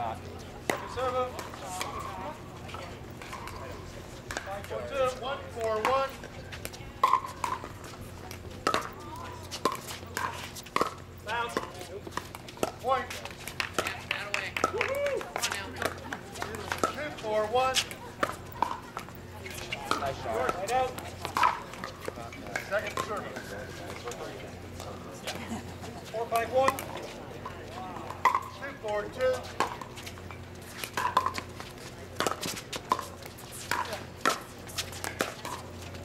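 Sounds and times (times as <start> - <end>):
paddles hitting plastic ball: 5.6 - 24.1, 30.7 - 35.7
people talking: 13.8 - 29.6.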